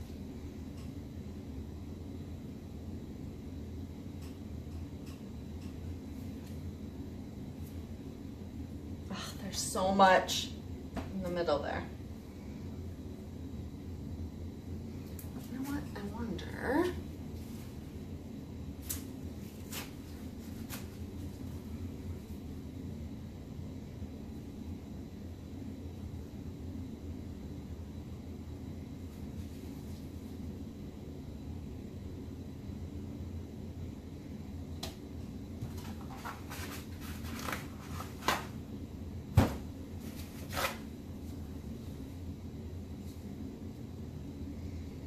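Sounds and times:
low hum of room noise: 0.0 - 45.0.

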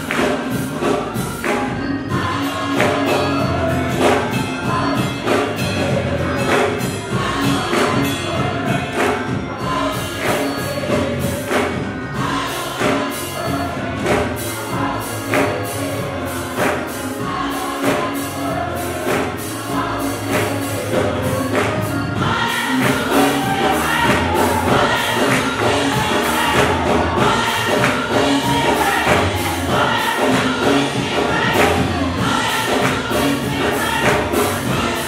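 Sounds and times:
gospel choir singing: 0.0 - 35.0
instrumental accompaniment: 0.0 - 35.0.

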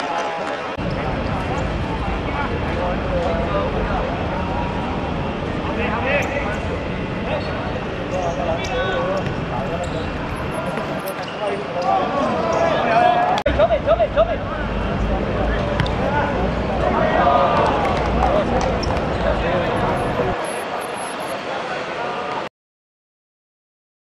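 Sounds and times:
players shouting and calling out: 7.2 - 22.4.

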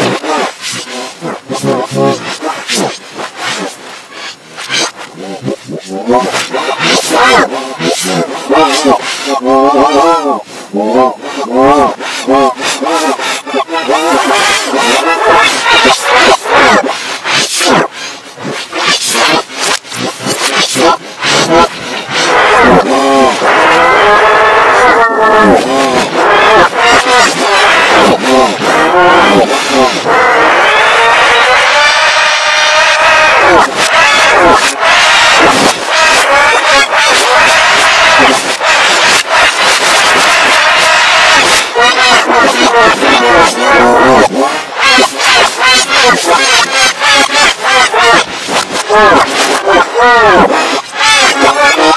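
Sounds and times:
distorted reversed boy yelling: 0.0 - 51.9.

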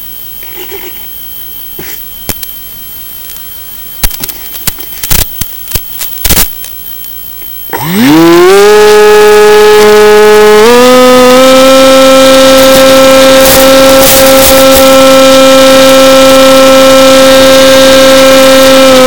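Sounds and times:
electric motor propeller whine: 7.7 - 19.0.

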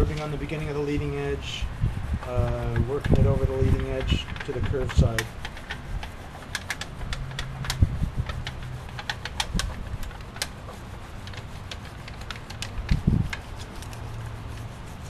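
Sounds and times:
metal tape clicking under hand: 2.5 - 14.2.

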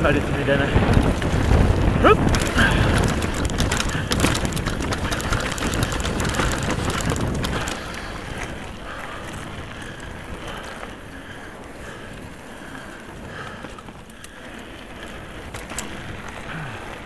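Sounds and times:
bike rattling over gravel: 0.0 - 17.0
tyre rumble on tarmac: 0.0 - 17.0.

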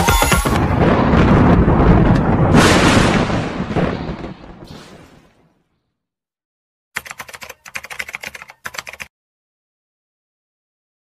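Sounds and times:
computer keyboard typing: 7.0 - 9.1.

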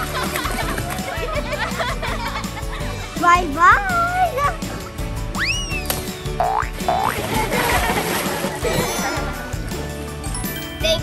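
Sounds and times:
people splashing into a pool: 0.0 - 1.4, 5.3 - 9.6
background music: 0.0 - 11.0
rising cartoon sound effects: 5.4 - 5.8.

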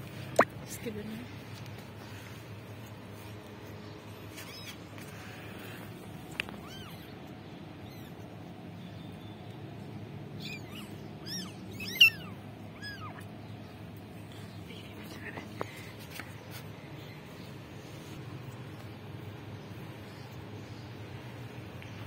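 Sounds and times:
kittens mewing: 4.3 - 8.5, 10.3 - 13.5.

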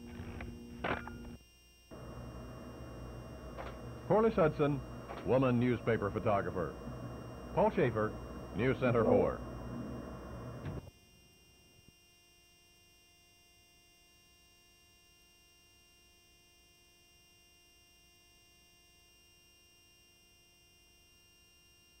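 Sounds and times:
thin high tape tones: 0.0 - 10.8
faint electrical hum: 0.0 - 22.0.

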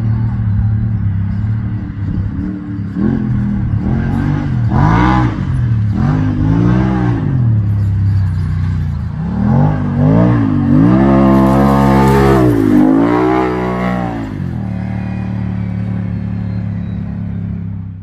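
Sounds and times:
vehicle engine revving: 0.0 - 18.0.

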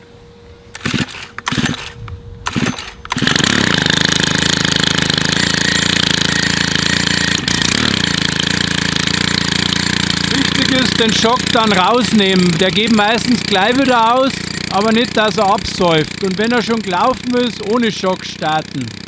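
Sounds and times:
recoil starter cord tugs: 0.7 - 19.0
small engine running: 0.7 - 19.0.

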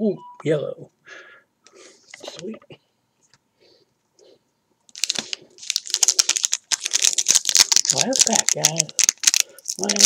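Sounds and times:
foil wrapper crinkling and tearing: 4.9 - 10.0.

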